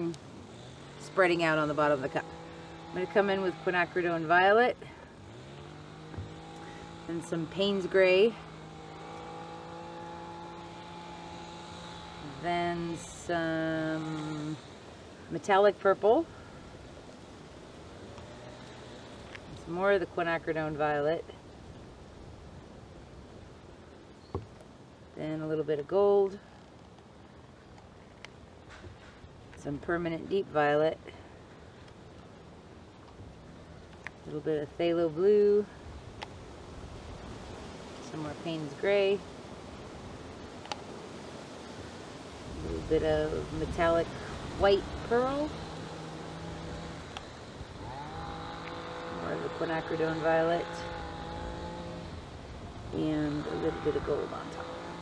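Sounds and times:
faint outdoor background noise: 0.0s - 55.0s
steady mechanical hum: 0.0s - 55.0s.

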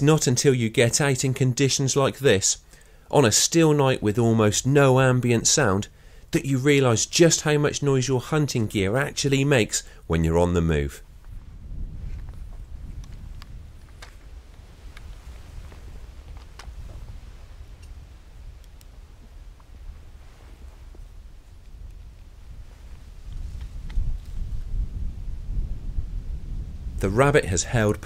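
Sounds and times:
clothing rustling: 19.2s - 21.7s.

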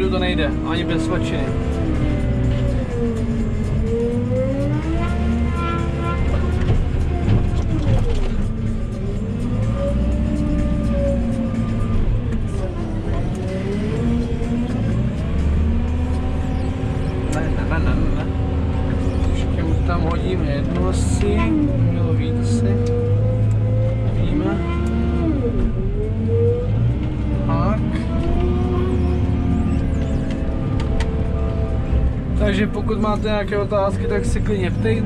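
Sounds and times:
diesel engine revving: 0.0s - 35.0s.

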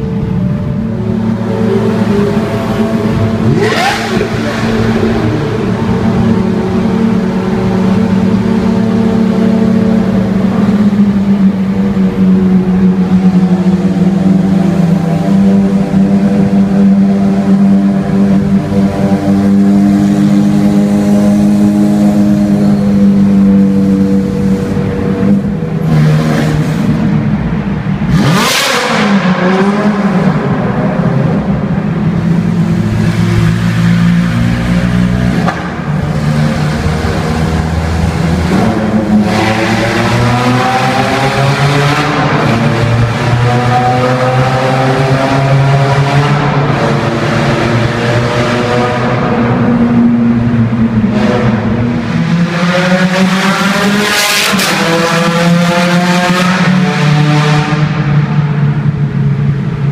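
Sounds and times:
car engines revving in tunnel: 0.0s - 59.9s.

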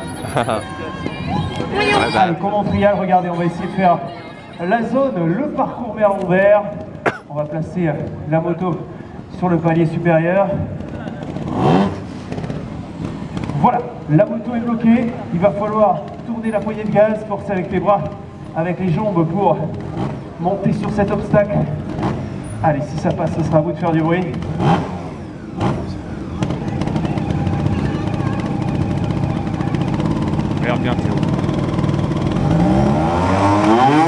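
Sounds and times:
motorcycle engine at low revs: 10.5s - 18.3s, 18.9s - 34.0s.

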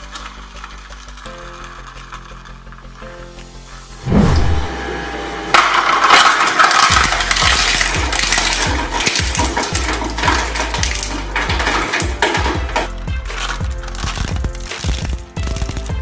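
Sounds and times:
shredder crunching plastic: 0.0s - 3.4s, 4.9s - 16.0s
deep falling boom: 4.0s - 5.2s.

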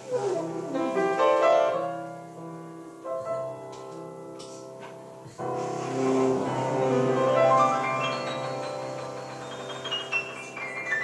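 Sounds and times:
jazz piano: 0.0s - 11.0s.

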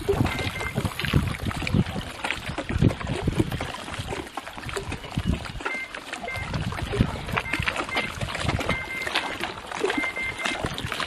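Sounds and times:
wind buffeting microphone: 0.0s - 5.7s, 6.3s - 11.0s
water lapping: 0.0s - 11.0s.

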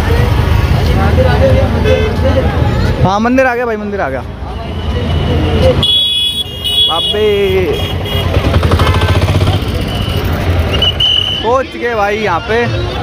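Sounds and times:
street traffic rumble: 0.0s - 13.0s.

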